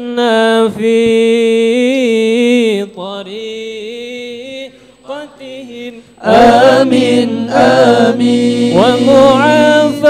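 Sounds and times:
men chanting devotional praise: 0:00.2 - 0:10.0.

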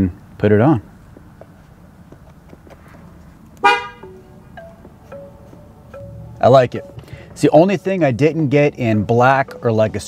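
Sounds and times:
truck horn toot: 0:03.6 - 0:04.2.

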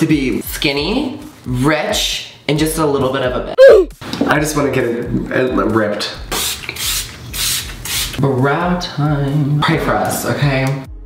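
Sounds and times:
spray bottle hissing sprays: 0:06.3 - 0:08.2.

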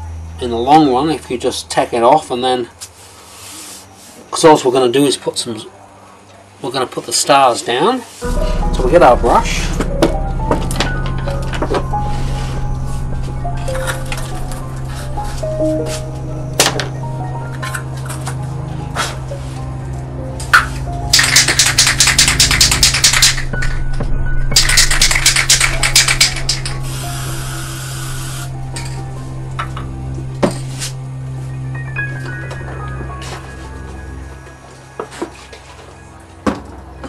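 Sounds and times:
background music: 0:08.2 - 0:37.0
spray can rattling: 0:21.1 - 0:23.7, 0:24.5 - 0:26.8
spray hissing: 0:25.8 - 0:28.6.

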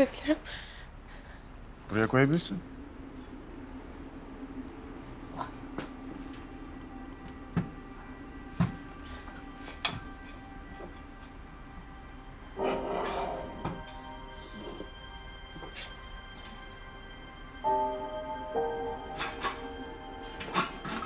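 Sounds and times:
soft background music: 0:02.0 - 0:21.0.

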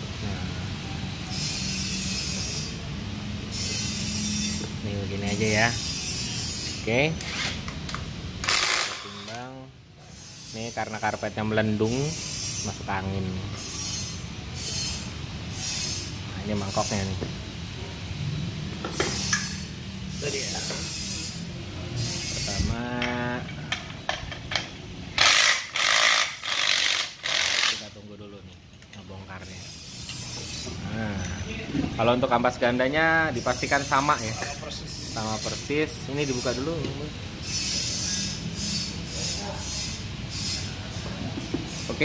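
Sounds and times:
low mechanical hum: 0:00.0 - 0:42.0.

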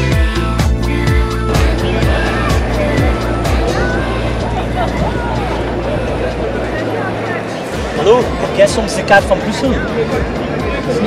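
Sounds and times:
background music: 0:00.0 - 0:11.0
indistinct talking: 0:00.0 - 0:11.0
steady low rumble: 0:00.4 - 0:11.0.

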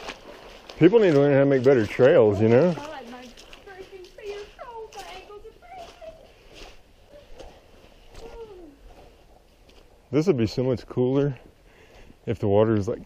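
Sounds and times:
footsteps on sandy trail: 0:00.0 - 0:13.0.

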